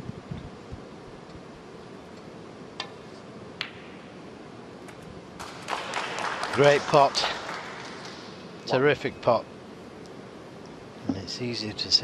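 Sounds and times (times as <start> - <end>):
audience applause: 5.4 - 8.5.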